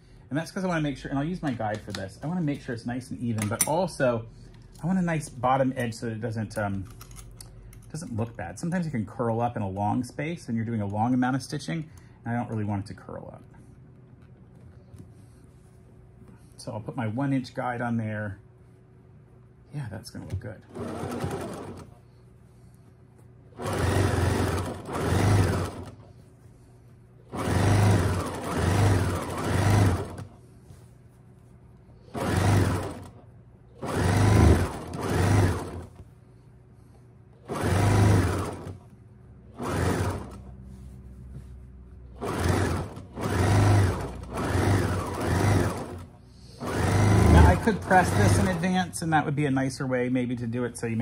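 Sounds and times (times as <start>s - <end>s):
sewing machine stitching: 20.6s - 22.0s, 23.6s - 26.1s, 27.3s - 30.4s, 32.1s - 33.2s, 33.8s - 36.0s, 37.4s - 38.8s, 39.5s - 40.5s, 42.2s - 48.9s.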